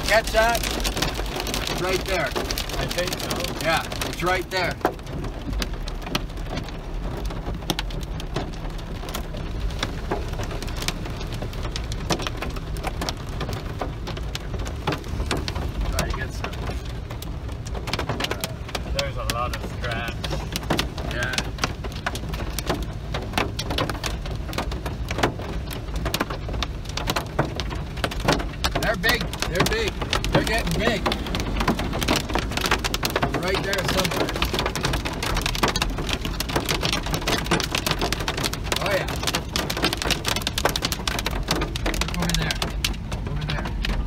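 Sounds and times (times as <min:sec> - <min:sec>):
hail and rain on car roof: 0:00.0 - 0:44.0.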